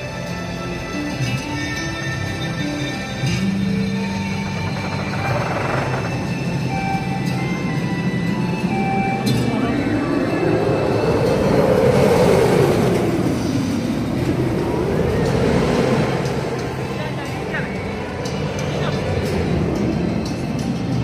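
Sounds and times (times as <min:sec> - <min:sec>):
background music: 0:00.0 - 0:21.0
roller coaster roaring past: 0:04.3 - 0:21.0.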